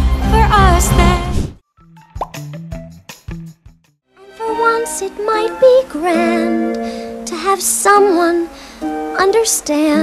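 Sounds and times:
singing with music: 0:00.0 - 0:01.4, 0:04.2 - 0:10.0.

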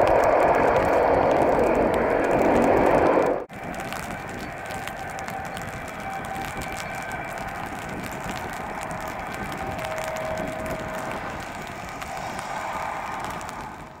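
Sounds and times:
noisy hum: 0:00.0 - 0:14.0.

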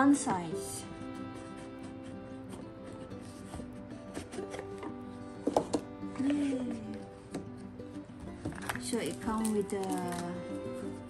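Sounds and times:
background music: 0:00.0 - 0:11.0
cardboard box lid knocks and scrapes: 0:03.4 - 0:05.9.

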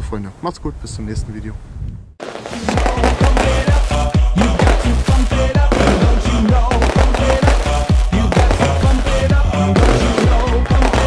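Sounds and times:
electronic music with heavy beat: 0:02.2 - 0:11.0.

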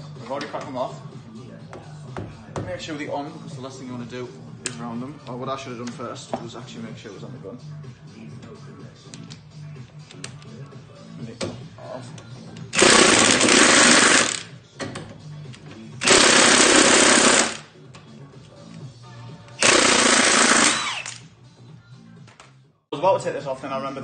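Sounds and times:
quiet background music: 0:00.0 - 0:24.0
impact wrench hammering: 0:12.8 - 0:14.4, 0:16.0 - 0:17.7, 0:19.6 - 0:21.2.

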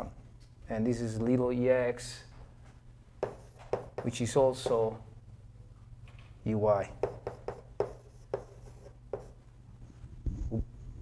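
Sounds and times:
low room hum: 0:00.0 - 0:11.0
chalk writing on a chalkboard: 0:03.2 - 0:04.9, 0:07.0 - 0:09.4.

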